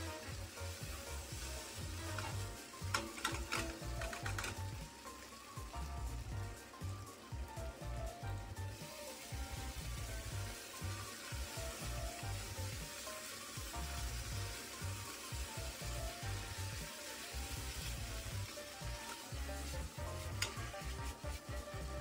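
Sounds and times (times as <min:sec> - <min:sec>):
meat sizzling in a pan: 0:00.0 - 0:22.0
spatula stirring: 0:01.2 - 0:04.9, 0:15.0 - 0:22.0.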